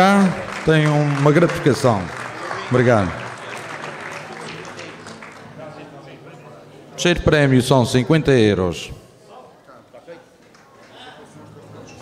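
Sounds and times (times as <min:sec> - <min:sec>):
crowd clapping: 0:00.0 - 0:06.2.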